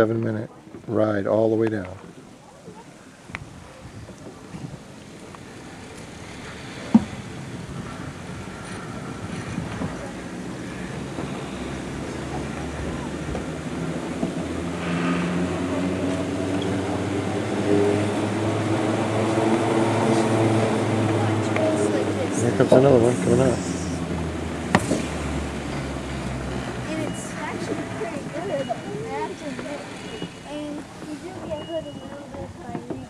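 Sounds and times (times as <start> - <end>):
gondola lift mechanical hum: 2.5 - 32.6
pitched drone: 5.8 - 30.0.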